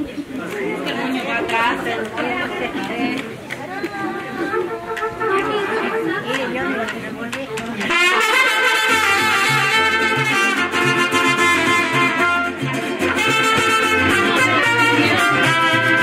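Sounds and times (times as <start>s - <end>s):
people chatting: 0.0s - 10.7s, 13.6s - 16.0s
guitar: 0.6s - 16.0s
brass melody: 7.9s - 16.0s.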